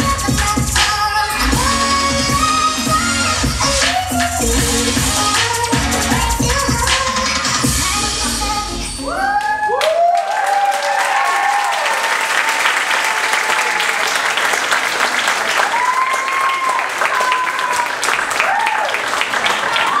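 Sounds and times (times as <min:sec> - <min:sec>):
long whoops: 0:09.0 - 0:14.0, 0:15.6 - 0:19.0
audience applauding and cheering: 0:09.0 - 0:20.0.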